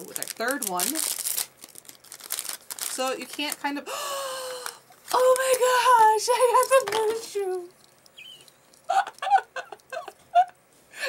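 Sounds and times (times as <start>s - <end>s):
woman laughing: 8.8s - 10.6s.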